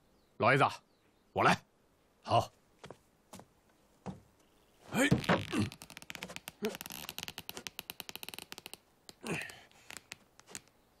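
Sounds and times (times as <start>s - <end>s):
wooden swing creaking: 4.0s - 10.7s.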